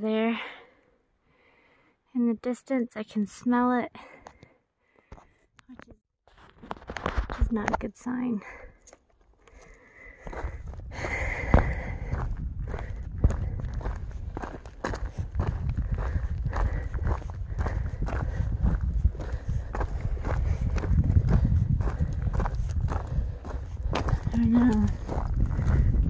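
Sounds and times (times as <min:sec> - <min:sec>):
footsteps on dirt trail: 0:06.3 - 0:07.8, 0:08.4 - 0:26.0
low microphone rumble: 0:10.3 - 0:26.0.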